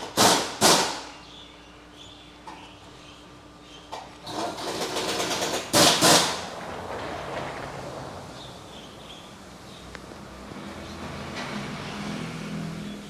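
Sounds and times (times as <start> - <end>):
loud sharp air blasts: 0.0 - 1.2, 4.3 - 6.6
air tool rattling: 4.2 - 6.5.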